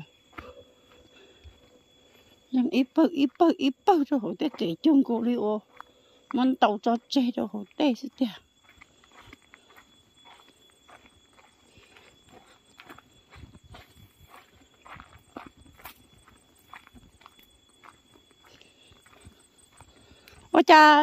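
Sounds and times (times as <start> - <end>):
footsteps on dirt path: 0.0 - 21.0.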